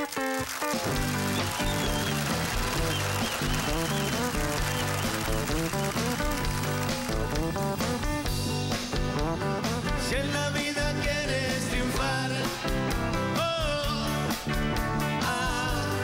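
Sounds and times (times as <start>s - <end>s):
live rock band playing: 0.0s - 16.0s.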